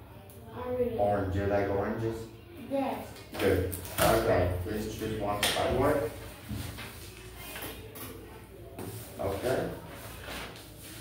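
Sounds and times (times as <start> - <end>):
paper rustling: 6.2 - 8.1, 8.9 - 11.0.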